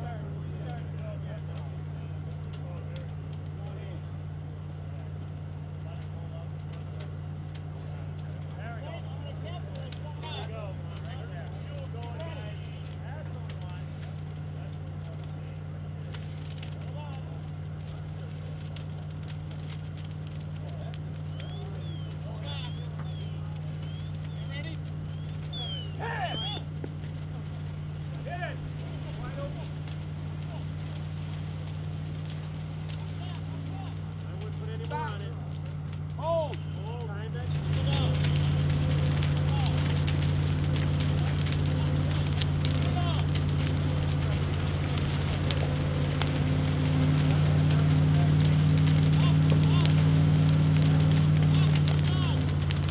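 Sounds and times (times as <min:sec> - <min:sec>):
distant indistinct voices: 0:00.0 - 0:52.9
low engine drone: 0:12.3 - 0:52.9.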